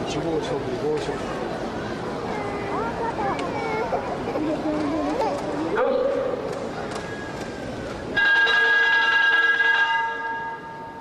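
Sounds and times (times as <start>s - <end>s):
loud multi-pitch signal horn: 8.2s - 10.9s.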